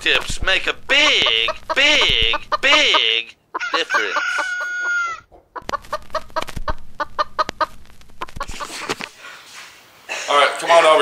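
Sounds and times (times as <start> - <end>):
chicken clucking: 0.9 - 9.1
chicken crow-like call: 3.6 - 5.3.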